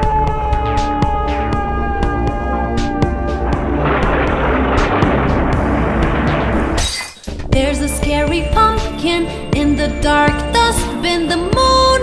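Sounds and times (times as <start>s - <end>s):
crash-like sound effect: 3.5s - 7.5s
cartoon background music: 7.4s - 12.0s.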